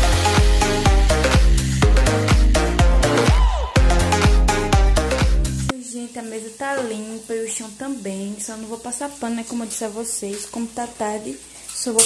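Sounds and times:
meat sizzling: 0.0s - 5.2s, 5.8s - 12.0s
woman speaking: 5.7s - 12.0s.

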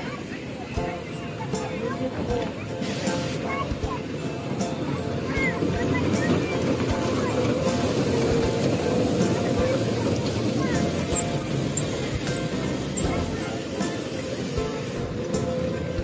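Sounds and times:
indistinct voices: 0.0s - 16.0s
music: 0.0s - 16.0s.

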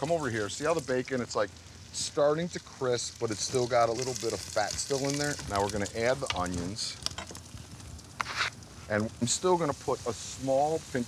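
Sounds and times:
onion sizzling in fat: 0.0s - 11.0s
short crackles of frying: 0.0s - 11.0s.

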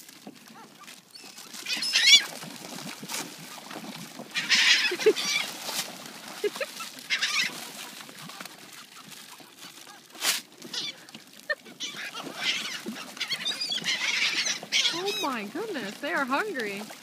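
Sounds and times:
gulls calling harshly: 1.2s - 2.4s, 4.3s - 5.6s, 6.4s - 7.6s, 10.6s - 17.0s.

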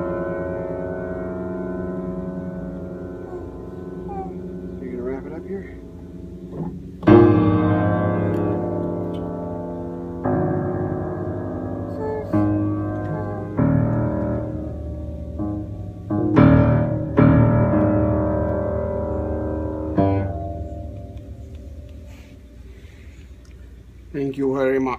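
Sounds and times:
piano note clusters: 0.0s - 22.7s.

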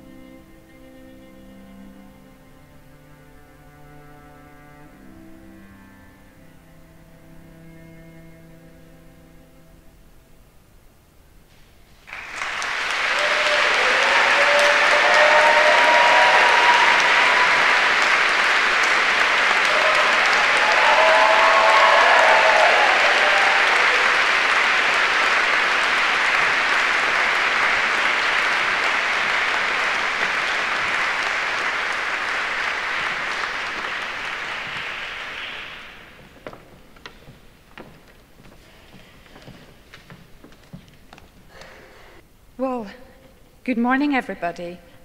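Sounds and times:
audience applauding: 12.0s - 37.9s.

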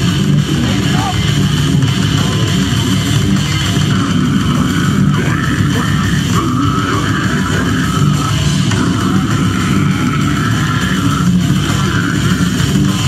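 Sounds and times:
distorted electric guitar: 0.0s - 13.0s
fast relentless drumming: 0.0s - 13.0s.

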